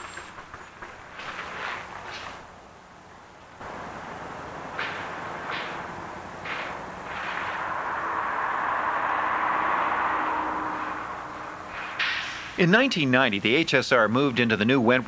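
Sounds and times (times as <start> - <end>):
broad rushing noise: 0.0 - 13.7
trolley bus moving off: 0.0 - 14.9
faint low hum: 2.5 - 15.0
sharp cracks: 4.6 - 12.6.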